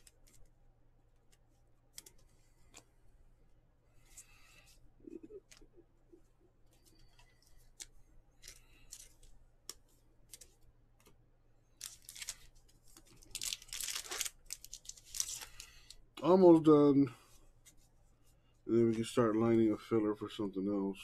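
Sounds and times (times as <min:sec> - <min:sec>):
cards being shuffled: 0:00.0 - 0:00.6, 0:01.2 - 0:02.9, 0:06.8 - 0:16.0
wrapper crinkled and torn: 0:11.8 - 0:16.0.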